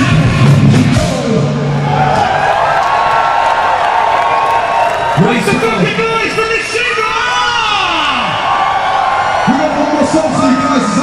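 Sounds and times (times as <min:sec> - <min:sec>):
crowd cheering and screaming: 0:00.0 - 0:11.0.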